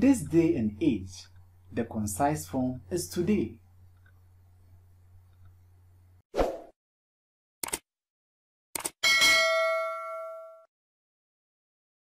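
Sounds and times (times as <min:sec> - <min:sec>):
bell ding: 0:09.0 - 0:10.7.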